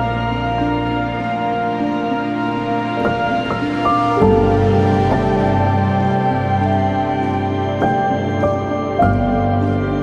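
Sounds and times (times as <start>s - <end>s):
calm strings and synth music: 0.0s - 10.0s.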